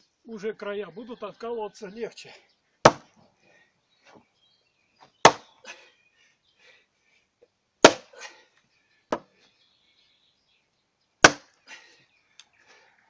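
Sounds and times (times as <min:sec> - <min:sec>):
splitting maul striking log: 0:02.8 - 0:03.1, 0:05.2 - 0:05.5, 0:07.8 - 0:08.1, 0:11.2 - 0:11.5.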